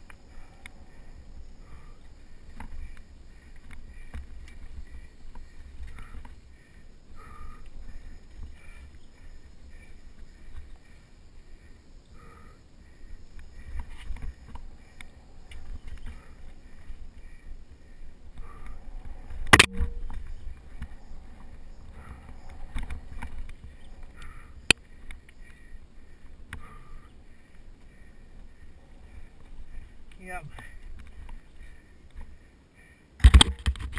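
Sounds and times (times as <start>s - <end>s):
bike rattles and clicks: 0.0s - 12.4s, 13.0s - 32.4s, 33.2s - 33.9s.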